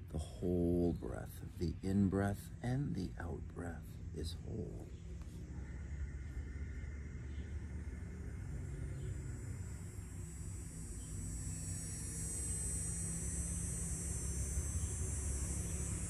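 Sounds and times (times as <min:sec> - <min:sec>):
distant engine hum and rumble: 0:00.0 - 0:16.0
high hiss: 0:00.0 - 0:16.0.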